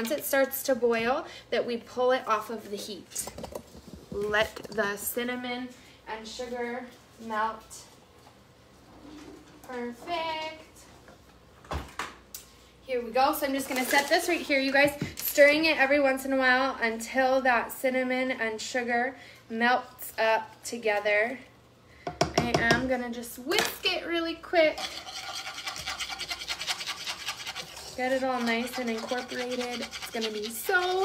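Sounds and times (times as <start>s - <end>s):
whisk scraping metal saucepan: 24.5s - 31.0s.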